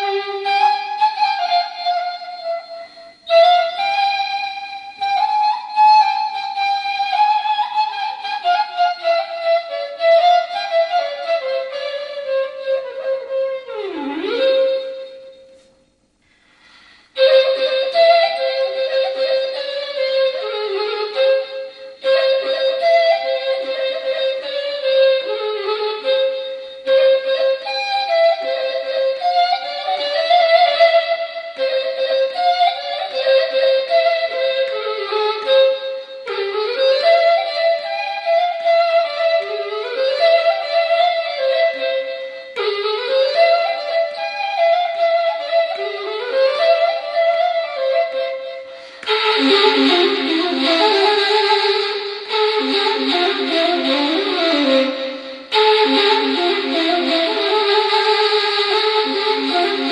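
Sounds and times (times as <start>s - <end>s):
end-blown reed flute melody: 17.2s - 59.9s.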